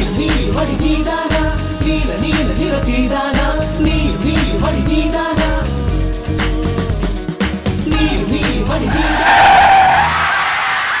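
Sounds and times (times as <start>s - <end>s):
tyres screeching: 8.9s - 11.0s.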